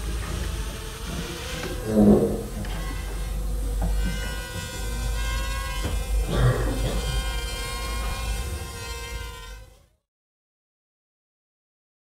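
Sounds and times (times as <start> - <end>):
quadcopter propellers buzzing: 0.0 - 9.8.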